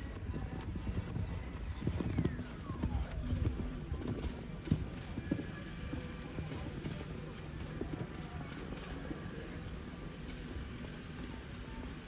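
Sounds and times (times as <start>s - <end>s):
horse hoofbeats on sand: 0.0s - 12.0s.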